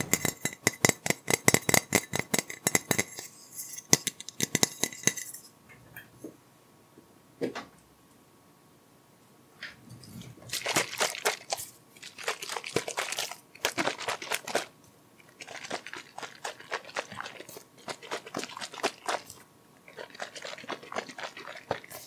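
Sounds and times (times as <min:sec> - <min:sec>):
plastic bottle crinkling: 0:10.5 - 0:22.0.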